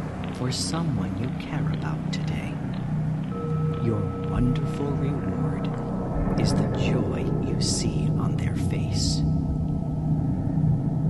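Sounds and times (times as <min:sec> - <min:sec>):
person speaking softly: 0:00.3 - 0:02.6, 0:03.8 - 0:05.8, 0:06.4 - 0:09.2.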